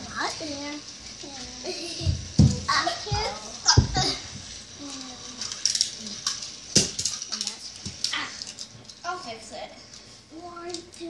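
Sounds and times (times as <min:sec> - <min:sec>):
young children's voices: 0:00.0 - 0:06.2, 0:10.3 - 0:11.0
children laughing: 0:01.6 - 0:02.4, 0:03.6 - 0:04.3.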